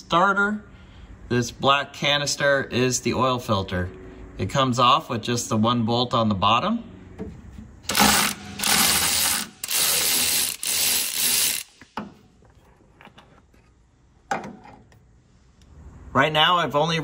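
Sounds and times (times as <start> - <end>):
socket ratchet clicking: 7.9 - 12.0.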